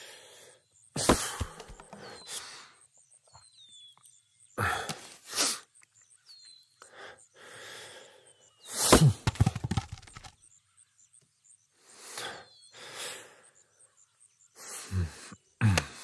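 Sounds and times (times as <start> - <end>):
man breathing heavily: 0.0 - 2.9, 4.6 - 5.7, 6.8 - 9.4, 11.8 - 13.9, 14.6 - 16.0
faint outdoor ambience: 0.0 - 16.0
heavy thunks: 9.0 - 10.3.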